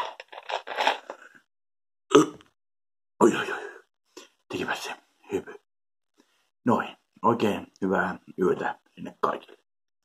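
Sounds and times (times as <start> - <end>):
mouth noises: 2.1 - 2.6.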